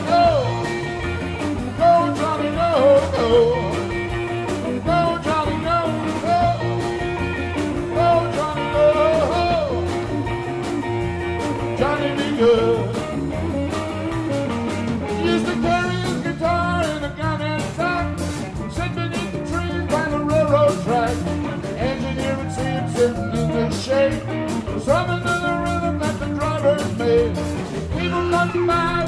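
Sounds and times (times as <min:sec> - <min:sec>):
drum kit steady beat: 0:00.0 - 0:29.0
electric bass: 0:00.0 - 0:29.0
electric guitar lead lines: 0:00.0 - 0:29.0.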